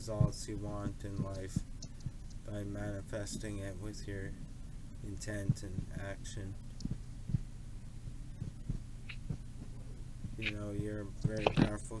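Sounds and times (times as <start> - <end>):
soft low thumps: 0.0 - 11.8
low steady hum: 0.0 - 12.0.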